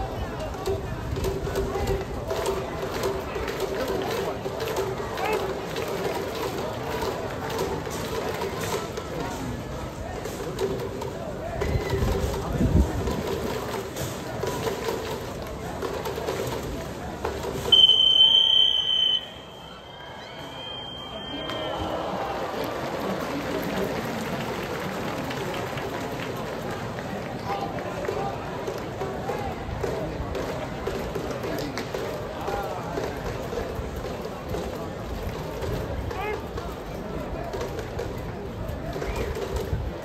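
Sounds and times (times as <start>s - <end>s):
crowd voices: 0.0s - 40.0s.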